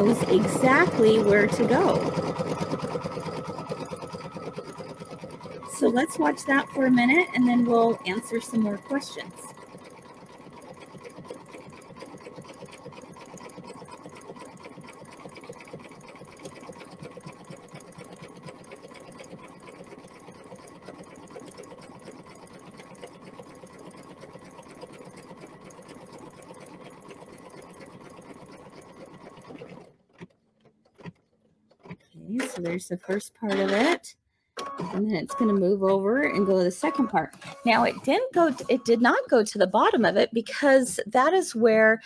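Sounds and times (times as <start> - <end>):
embroidery machine stitching: 0.0 - 34.0, 34.6 - 40.8.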